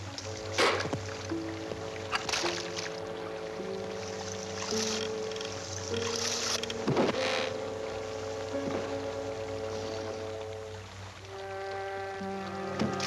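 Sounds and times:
dramatic orchestral music: 0.0 - 13.0.

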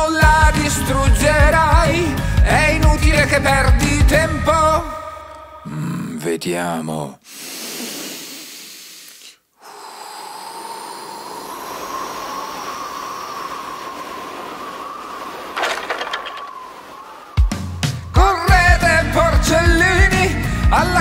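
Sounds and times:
windy blowing with faint whistle: 10.0 - 18.2
clatter of wood: 15.6 - 16.6
heavy crash of collapsing house: 15.6 - 16.8.

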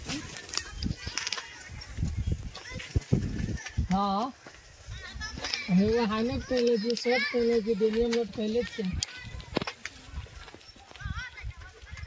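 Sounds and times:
footsteps on a dirt path: 0.0 - 12.0.

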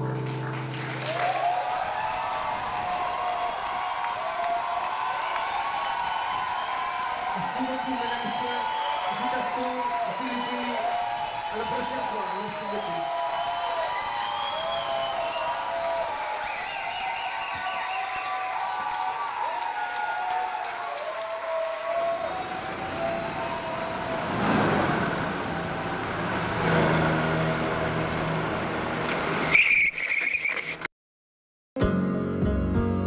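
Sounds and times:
car passing: 21.9 - 29.6
brief high squeal: 29.5 - 30.8.

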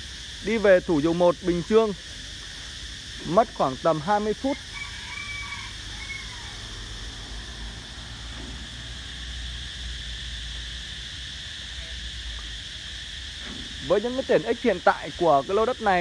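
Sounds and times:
high-pitched insect chorus: 0.0 - 16.0.

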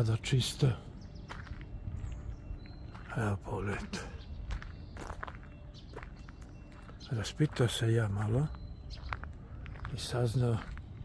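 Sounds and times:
footsteps on gravel: 0.3 - 11.0.

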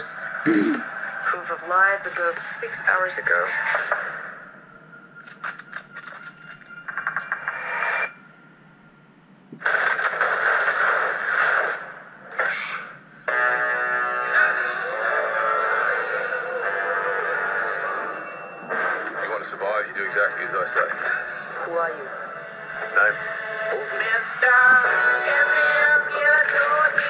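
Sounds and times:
music with sustained chords: 13.2 - 26.8.

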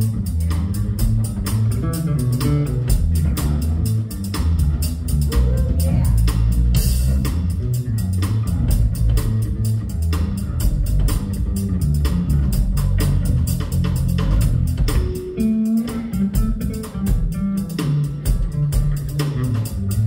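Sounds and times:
electric bass guitar: 0.0 - 20.0.

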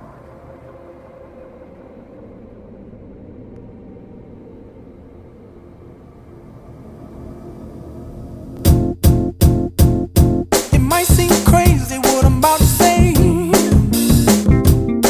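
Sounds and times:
faint sustained tones: 0.0 - 8.6
low rumbling ambience: 0.0 - 10.5.

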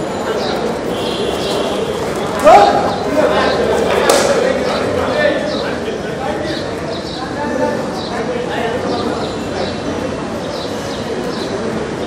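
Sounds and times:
men shouting: 2.2 - 3.6.

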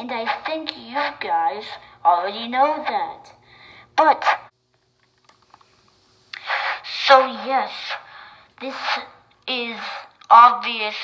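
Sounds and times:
breathy hiss through megaphone: 6.4 - 9.2.

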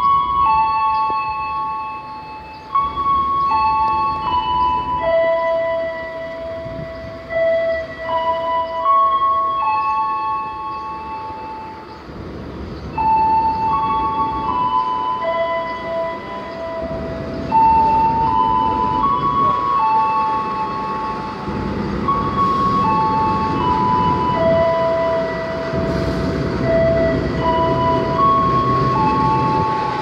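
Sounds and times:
slow melody of held notes: 0.0 - 12.0, 12.8 - 30.0.

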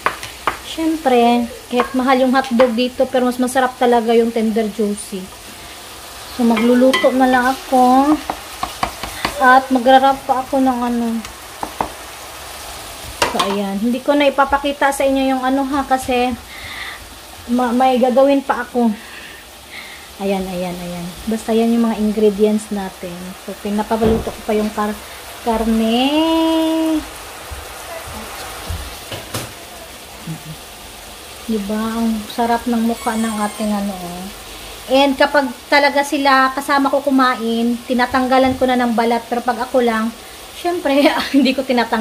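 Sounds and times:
meat and onion sizzling: 0.0 - 42.0.

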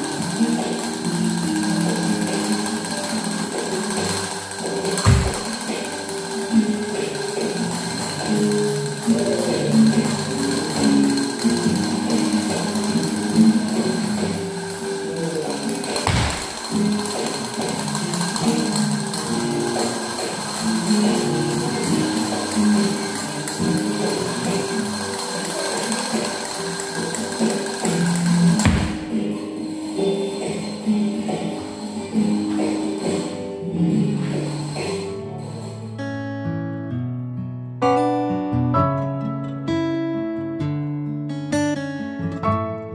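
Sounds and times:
castanets rattling rolls: 0.0 - 30.8.

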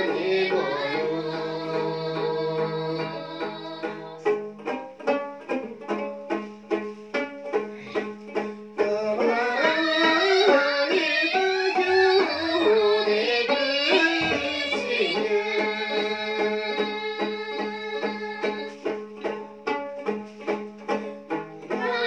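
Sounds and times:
women singing: 0.0 - 4.2, 8.8 - 18.8, 21.7 - 22.0
plucked lute strumming: 0.0 - 22.0.

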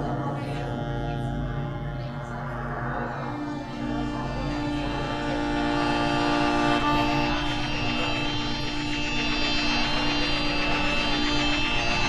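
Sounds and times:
low drone: 0.0 - 12.0
accordion chord: 3.2 - 12.0.

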